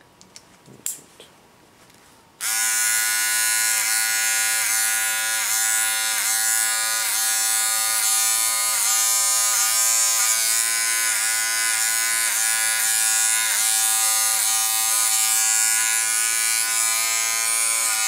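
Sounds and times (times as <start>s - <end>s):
electric hair clipper buzzing: 2.4s - 18.0s.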